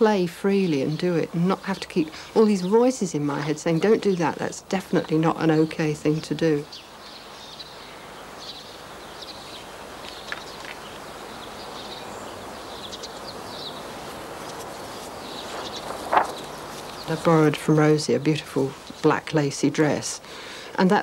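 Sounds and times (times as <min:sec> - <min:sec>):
small birds chirping: 0:00.0 - 0:21.0
steady background hiss: 0:00.0 - 0:21.0.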